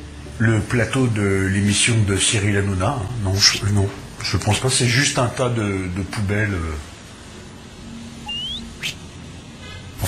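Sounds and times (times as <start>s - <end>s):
faint outdoor background: 0.0s - 10.0s
short rising chirp: 8.2s - 9.0s
brief upward swish: 8.3s - 9.0s.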